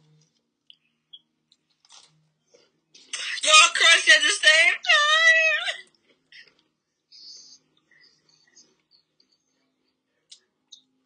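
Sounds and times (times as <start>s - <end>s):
chewing cracker crunches: 1.8s - 2.2s.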